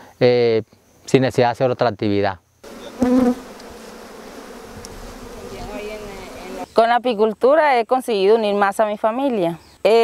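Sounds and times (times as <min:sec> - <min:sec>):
honeybees buzzing: 0:02.6 - 0:07.2.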